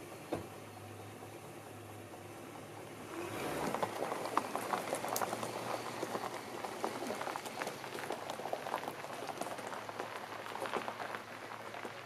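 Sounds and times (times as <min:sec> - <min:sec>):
tyres crunching over gravel: 0:03.0 - 0:12.0.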